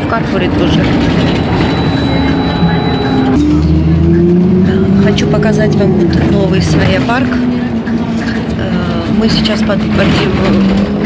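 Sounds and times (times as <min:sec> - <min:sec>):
bus engine hum: 0:00.0 - 0:11.0
low road rumble: 0:00.0 - 0:11.0.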